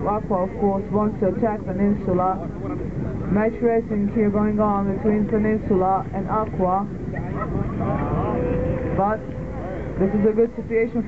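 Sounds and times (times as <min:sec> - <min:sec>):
low rumble: 0:00.0 - 0:10.6.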